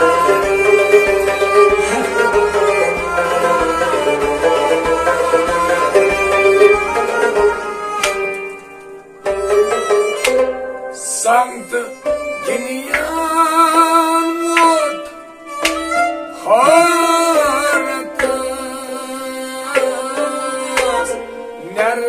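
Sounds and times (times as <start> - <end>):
man singing: 0.0 - 5.9, 10.9 - 15.2, 16.3 - 22.0
hand drum beat: 0.0 - 10.8, 12.0 - 21.2
bowed sarangi melody: 0.0 - 22.0
harmonium: 0.0 - 22.0
plucked rabab: 0.0 - 22.0.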